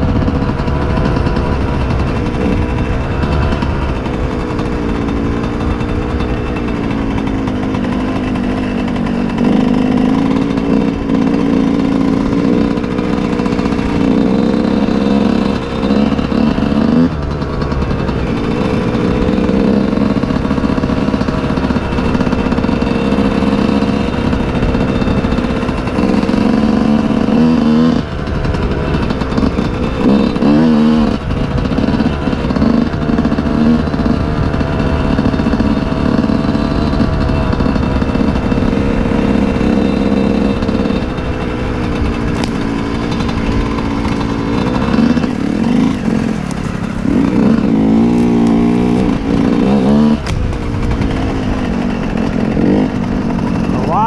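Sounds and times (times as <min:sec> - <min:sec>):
two-stroke motorcycle engine: 0:00.0 - 0:54.0.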